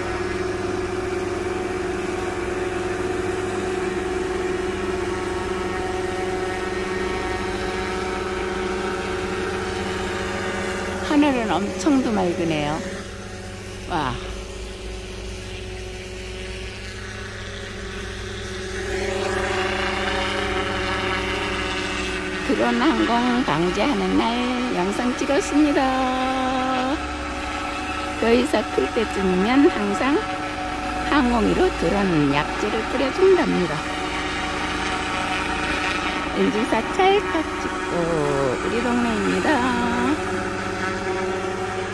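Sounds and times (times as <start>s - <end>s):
helicopter rotor hum: 0.0s - 41.9s.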